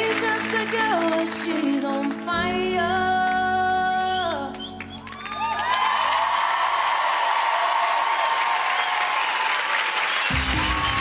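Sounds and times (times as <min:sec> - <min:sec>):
audience applauding and cheering: 0:00.0 - 0:02.6, 0:04.3 - 0:11.0.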